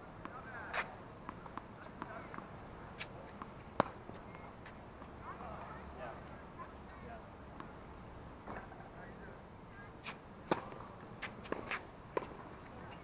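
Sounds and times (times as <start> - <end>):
faint distant voices: 0.0 - 13.0
tennis balls popping off rackets: 0.2 - 5.8, 10.4 - 13.0.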